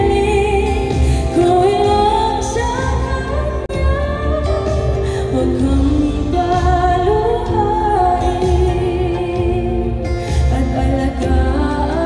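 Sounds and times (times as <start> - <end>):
bass and backing accompaniment: 0.0 - 12.0
woman singing pop ballad: 0.0 - 12.0.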